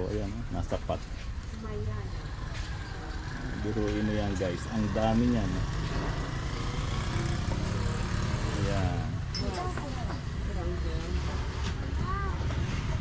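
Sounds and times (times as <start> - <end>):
people talking off-mic: 8.5 - 12.5.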